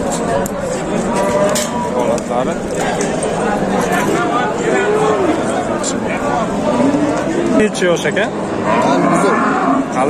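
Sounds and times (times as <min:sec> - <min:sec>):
crowd chatter: 0:00.0 - 0:10.0
bull mooing: 0:01.0 - 0:02.2, 0:08.4 - 0:10.0.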